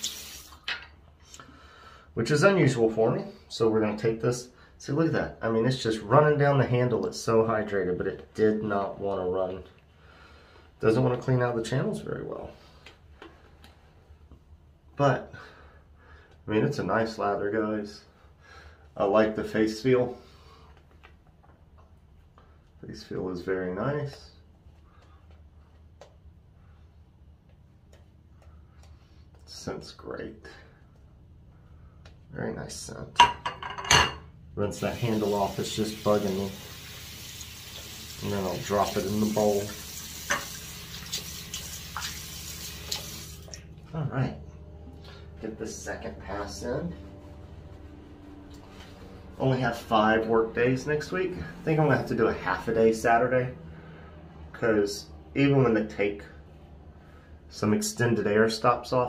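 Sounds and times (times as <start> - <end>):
tap water running into sink: 0.0 - 0.9, 34.8 - 43.7
faint clicks and taps: 24.9 - 26.3, 27.4 - 29.5.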